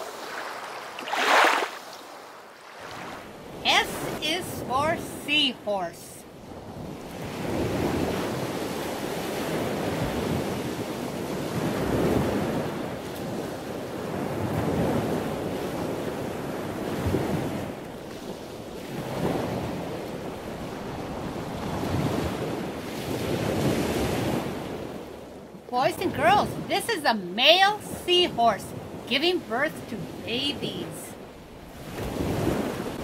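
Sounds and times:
ocean waves washing: 0.0s - 33.0s.

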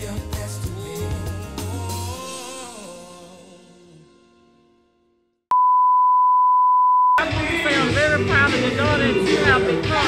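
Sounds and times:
music: 0.0s - 5.4s, 7.2s - 10.0s
electronic beep: 5.5s - 7.2s.

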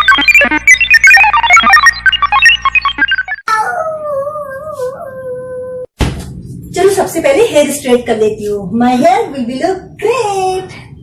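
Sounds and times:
comic dog howl: 3.5s - 5.9s.

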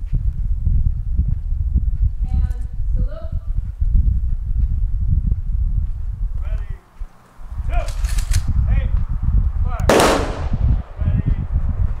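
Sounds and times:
steady low rumble: 0.0s - 12.0s
quick clicks: 7.8s - 8.5s
sharp bang with ringing tail: 9.9s - 10.8s.

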